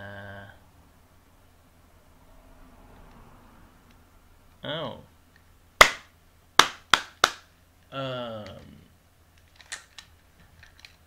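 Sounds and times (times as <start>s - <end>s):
person clapping hands: 5.8s - 7.5s.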